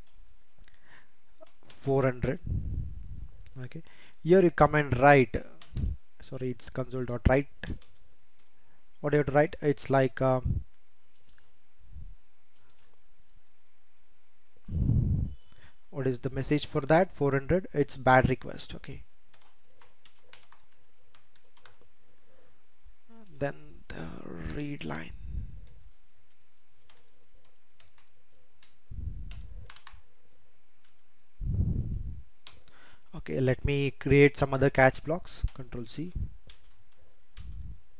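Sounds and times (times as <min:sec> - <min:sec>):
soft low muffled sound: 0:00.0 - 0:37.9
low muffled sound: 0:14.6 - 0:15.4, 0:31.4 - 0:32.3
computer keyboard keystrokes: 0:19.3 - 0:21.8, 0:25.6 - 0:30.0, 0:36.4 - 0:37.6.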